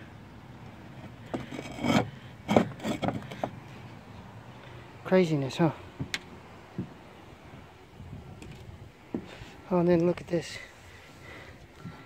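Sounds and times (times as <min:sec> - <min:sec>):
roof tiles scraping and knocking: 0:01.0 - 0:03.6.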